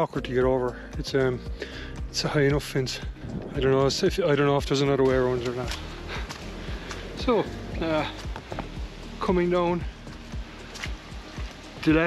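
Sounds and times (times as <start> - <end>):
music with low regular beat: 0.0 - 12.0.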